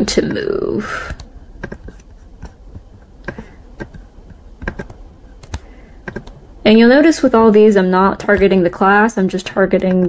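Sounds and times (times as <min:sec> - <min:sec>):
computer mouse and keyboard clicking: 0:00.2 - 0:06.4, 0:09.4 - 0:10.0.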